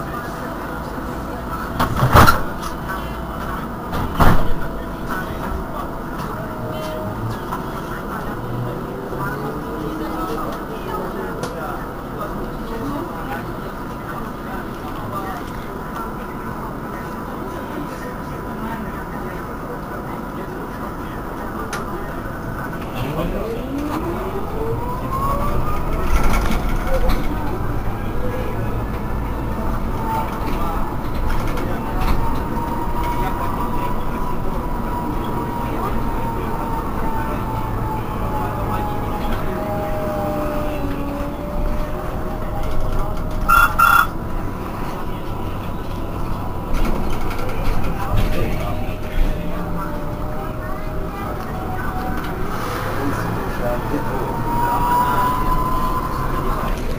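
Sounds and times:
trolleybus electric drive whine: 0.0 - 56.9.

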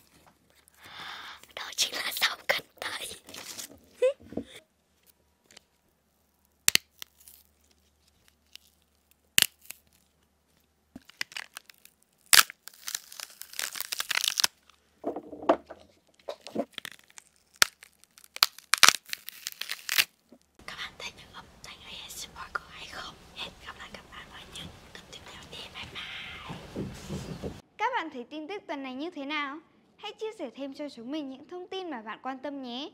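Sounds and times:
stringy tearing: 2.9 - 4.0, 5.0 - 14.8, 16.0 - 20.5
rustling and crunching: 2.9 - 20.6
celery stalks snapping: 6.7 - 10.1, 11.0 - 14.8, 16.4 - 20.4.

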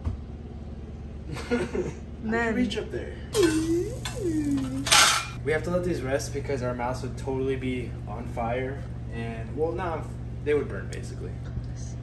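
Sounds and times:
baking sheet clanking: 3.4 - 5.4
baking sheet scraping wire rack: 3.4 - 5.4.

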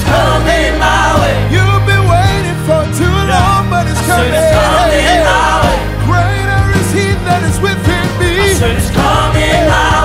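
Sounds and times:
live band playing: 0.0 - 10.0
man singing gospel vocal runs: 1.3 - 10.0.

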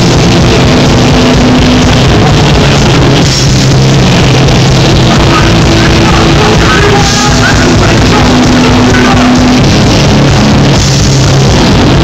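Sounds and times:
heavy rock band with distorted guitars: 0.0 - 12.0.

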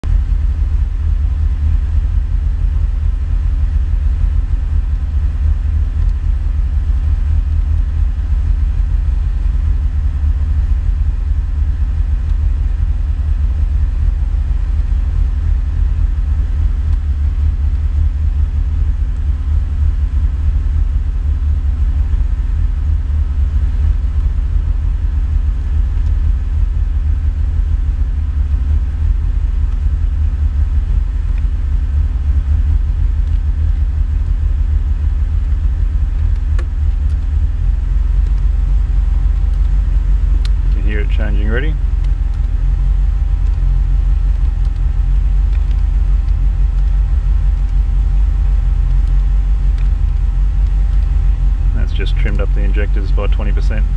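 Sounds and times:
car engine idling: 0.0 - 53.9.

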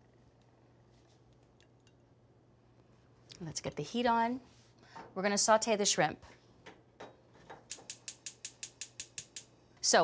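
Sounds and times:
stove igniter clicking: 7.7 - 9.5.

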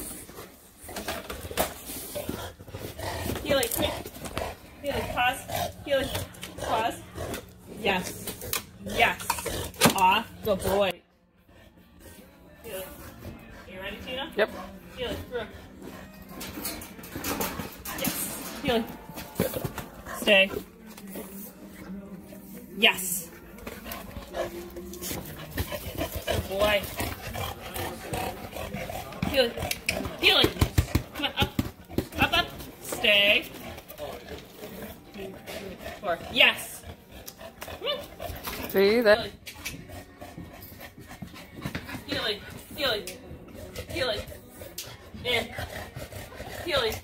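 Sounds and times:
dog panting: 0.0 - 47.0.

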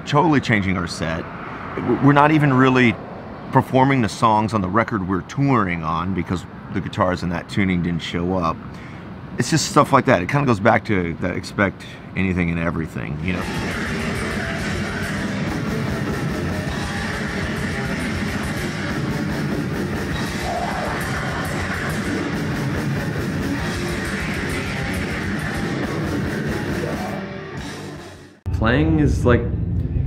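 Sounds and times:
distorted metal guitars: 13.2 - 28.5
fast dense drumming: 13.4 - 27.0.

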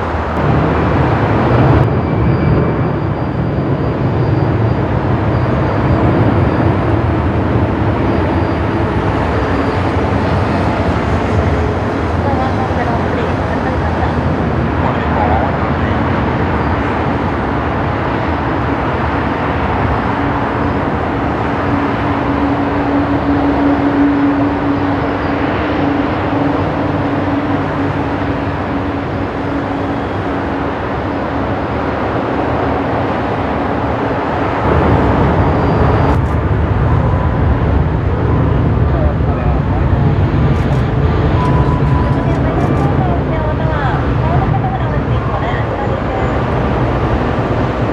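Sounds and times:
jet engines rumbling: 0.0 - 47.9.

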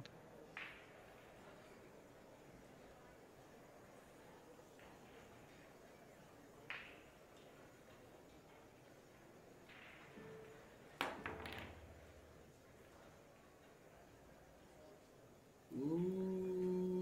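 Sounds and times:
pool balls clicking together: 0.5 - 1.4, 6.6 - 13.9
balls rolling on cloth: 0.5 - 14.7
cue striking cue ball: 9.8 - 12.4.

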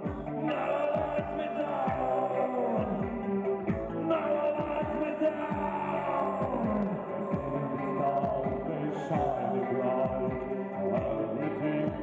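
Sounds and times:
kick drum beats: 0.0 - 2.2, 2.8 - 12.0
sustained keyboard or guitar chords: 0.0 - 12.0.

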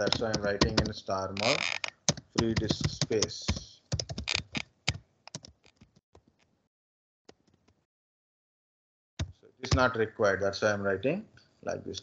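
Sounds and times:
computer keyboard typing: 0.0 - 1.0, 1.9 - 6.0.

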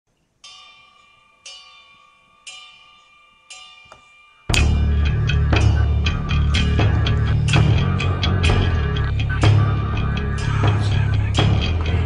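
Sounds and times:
bell-like chime: 0.4 - 9.6.

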